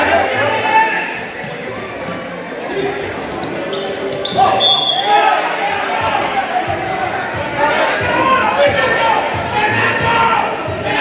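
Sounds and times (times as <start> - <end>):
people shouting and chattering: 0.0 - 11.0
shoes squeaking on court: 1.3 - 5.1.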